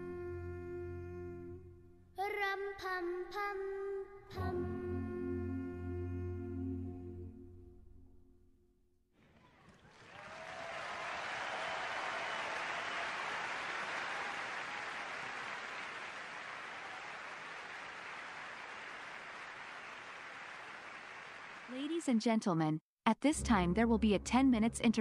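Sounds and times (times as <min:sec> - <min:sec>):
audience applauding: 0:09.2 - 0:22.0.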